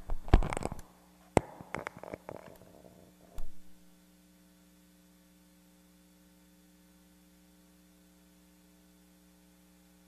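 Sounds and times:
faint mains hum: 0.0s - 10.0s.

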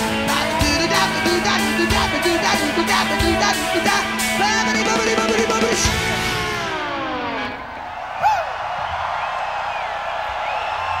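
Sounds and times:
crowd cheering: 0.0s - 11.0s
guitar chord sliding down: 4.8s - 7.6s
crowd whoops: 6.6s - 11.0s.

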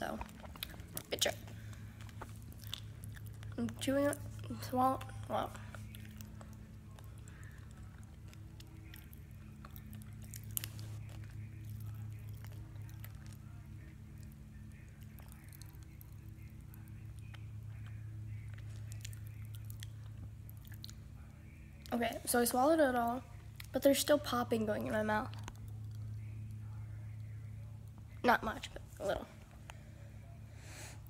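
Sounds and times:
low hum: 0.0s - 31.0s
chewing: 0.1s - 22.0s, 25.3s - 26.6s.

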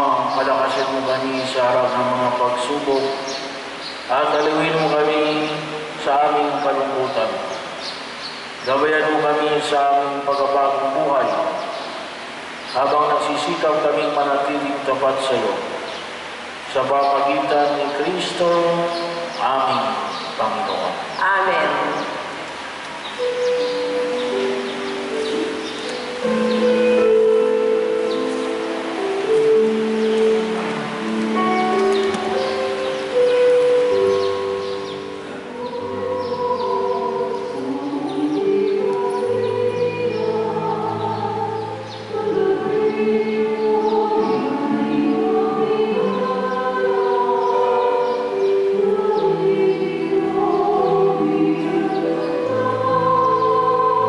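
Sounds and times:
church choir singing a hymn: 16.7s - 54.0s.

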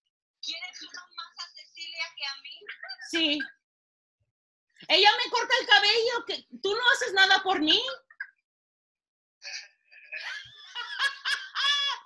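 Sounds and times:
woman laughing: 10.2s - 12.0s.

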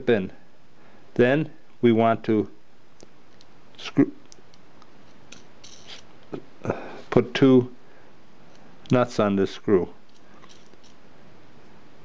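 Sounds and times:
nut scraping on screw threads: 4.8s - 6.1s, 10.0s - 11.0s.

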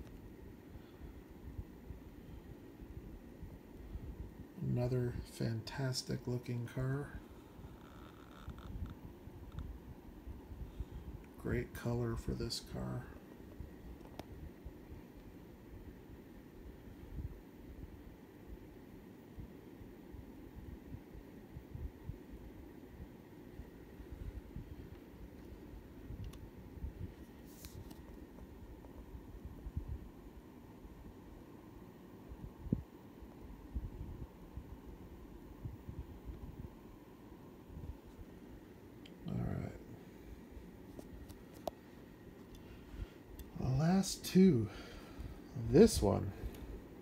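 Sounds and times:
soft hiss: 0.0s - 47.0s.

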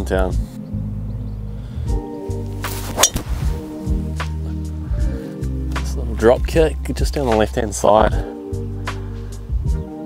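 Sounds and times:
background music with bass: 0.0s - 10.0s
golf club hitting ball: 2.7s - 4.4s.

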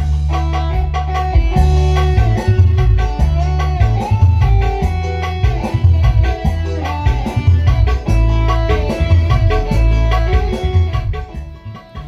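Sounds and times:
music with pulsing bass line: 0.0s - 12.0s.

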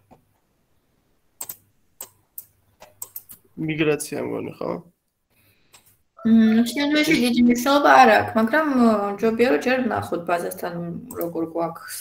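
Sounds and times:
person speaking: 6.2s - 12.0s.

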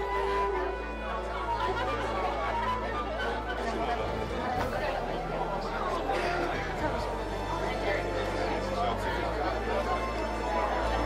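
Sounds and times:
people chattering: 0.0s - 11.0s
soft background music: 0.0s - 11.0s.

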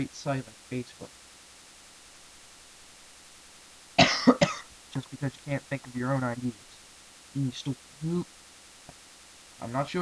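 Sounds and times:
man coughing: 4.0s - 4.7s.

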